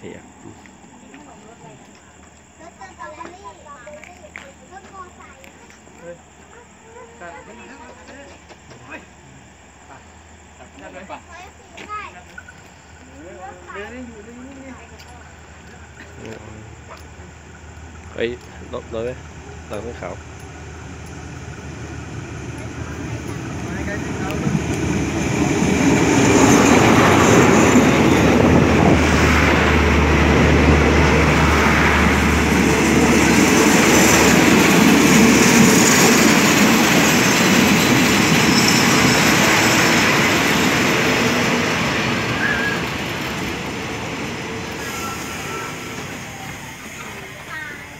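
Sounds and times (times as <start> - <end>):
diesel locomotive: 0.0 - 47.9
train wheels rumbling on rails: 11.8 - 47.9.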